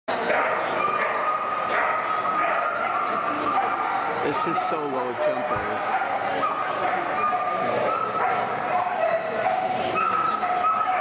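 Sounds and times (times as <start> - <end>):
chatter of people: 0.1 - 11.0
dog yipping and whining: 6.4 - 11.0.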